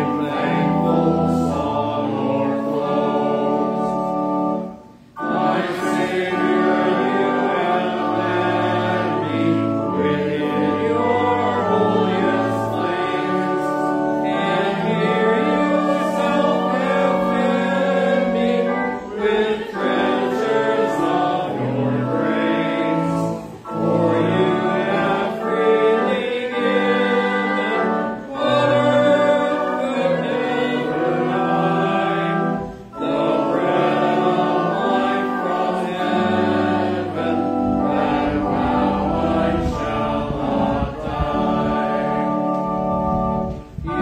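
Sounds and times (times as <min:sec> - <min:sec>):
congregation singing a hymn: 0:00.0 - 0:44.0.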